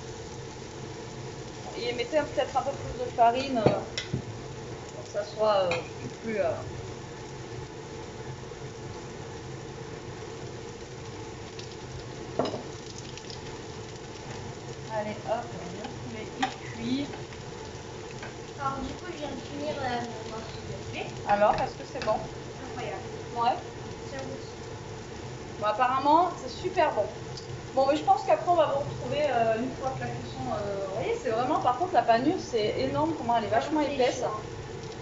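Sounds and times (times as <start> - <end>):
food sizzling in a pan: 0.0 - 35.0.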